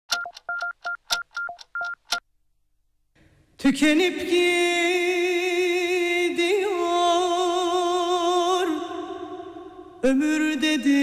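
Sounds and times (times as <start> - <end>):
short electronic beeps: 0.1 - 2.2.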